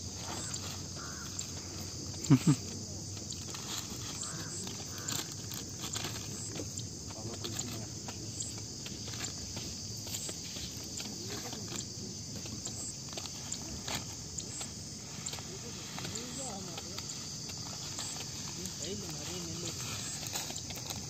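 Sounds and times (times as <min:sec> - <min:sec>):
insects droning: 0:00.0 - 0:21.0
plastic bottle and bag crinkling: 0:02.1 - 0:21.0.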